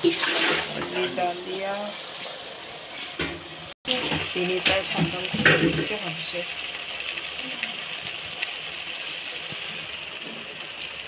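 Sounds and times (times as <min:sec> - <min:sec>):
food sizzling in frying pan: 0:00.0 - 0:11.0.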